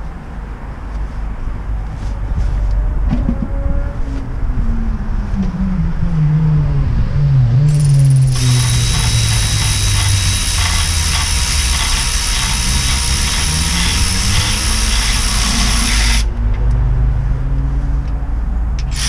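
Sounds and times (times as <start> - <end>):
hand ratchet clicking: 7.7 - 16.3, 18.8 - 19.0.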